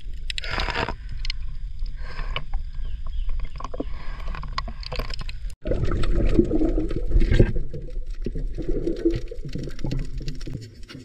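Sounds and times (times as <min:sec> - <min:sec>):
water sloshing and gurgling: 0:00.0 - 0:11.0.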